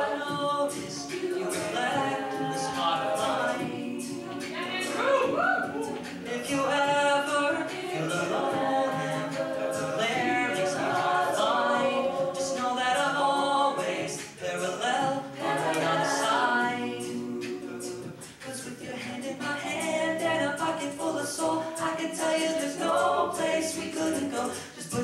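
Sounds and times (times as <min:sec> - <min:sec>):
a cappella group singing in harmony: 0:00.0 - 0:25.0
steady percussive beat: 0:00.0 - 0:25.0.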